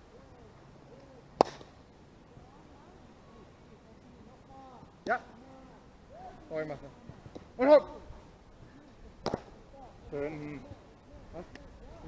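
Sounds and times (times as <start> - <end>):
baseball smack: 1.4 - 1.8, 9.2 - 9.5
distant shouts of players: 4.5 - 6.6.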